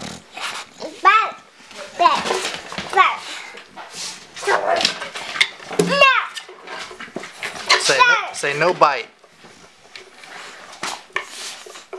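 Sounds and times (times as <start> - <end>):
dogs scuffling: 0.0 - 11.9
dog vocal noises: 3.0 - 5.1.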